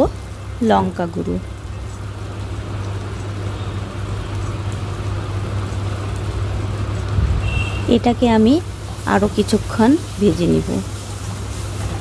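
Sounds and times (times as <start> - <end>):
onion masala sizzling in a pan: 0.0 - 12.0.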